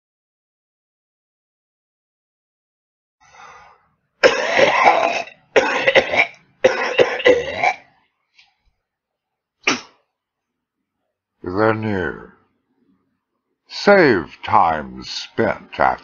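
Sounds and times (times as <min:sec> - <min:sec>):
person coughing: 0:04.2 - 0:07.9, 0:09.7 - 0:10.0.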